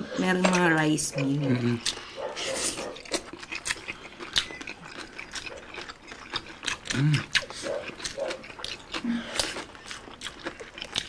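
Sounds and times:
crispy pork crackling being eaten: 0.0 - 11.0.

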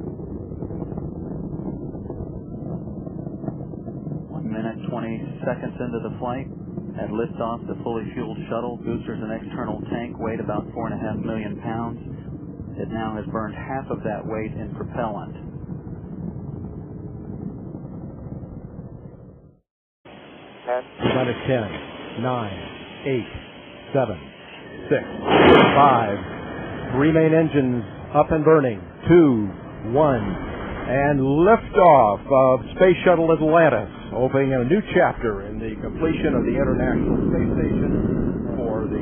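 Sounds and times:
rocket engines roaring: 0.0 - 39.0.

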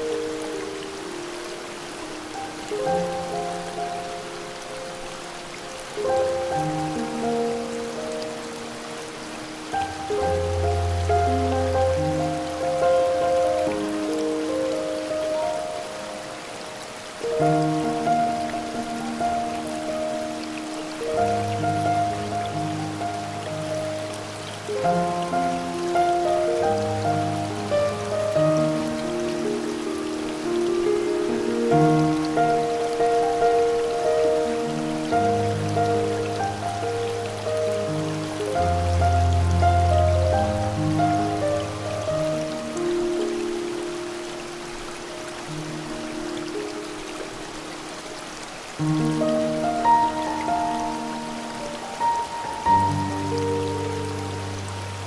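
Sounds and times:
soft piano chords: 0.0 - 55.0
waterfall rushing: 0.0 - 55.0.

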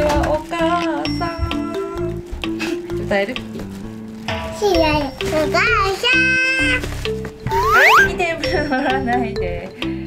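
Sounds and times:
young child vocalising: 7.5 - 8.2.

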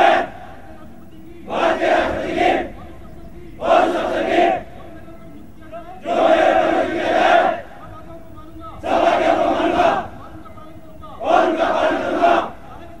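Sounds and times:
soldiers shouting war cry: 0.0 - 0.8, 1.4 - 2.8, 3.4 - 4.7, 5.9 - 7.7, 8.8 - 10.2, 11.2 - 13.0.

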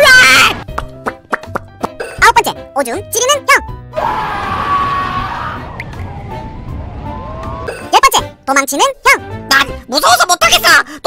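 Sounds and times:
light background music: 0.0 - 4.2, 5.0 - 11.0
rushing whoosh: 4.7 - 7.8.

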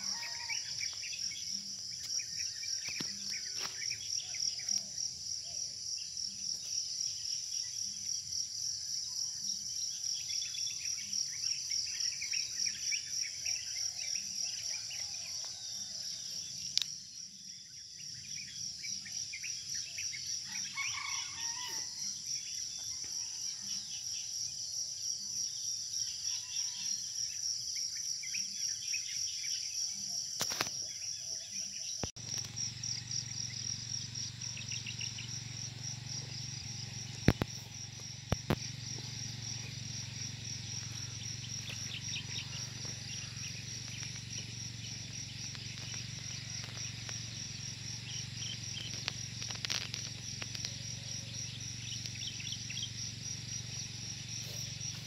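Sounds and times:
insects chirping: 0.0 - 55.0.

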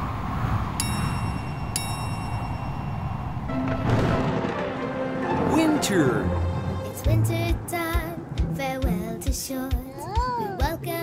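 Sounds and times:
high chime dings: 0.8 - 3.3.

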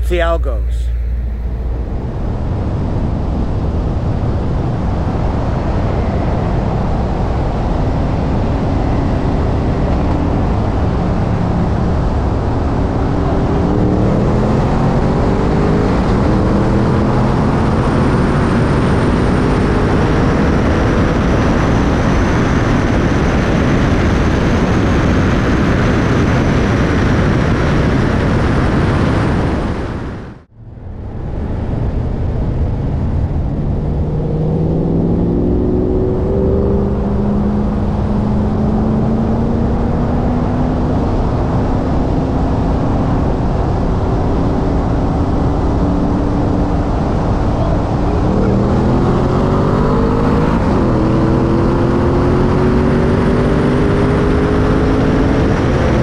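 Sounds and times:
car engine at full throttle: 0.0 - 56.0
wind rush: 0.9 - 56.0.

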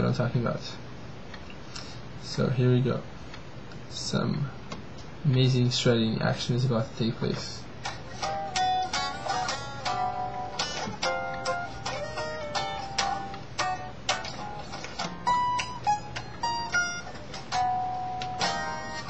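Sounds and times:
electric guitar notes: 7.8 - 19.0.

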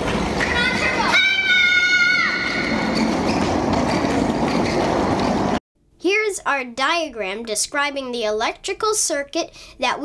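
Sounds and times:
electric motor and wheels rushing: 2.0 - 5.6.

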